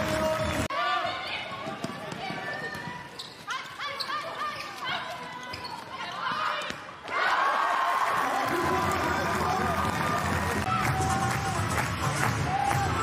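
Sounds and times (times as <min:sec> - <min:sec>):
shoes squeaking: 0:01.6 - 0:07.0.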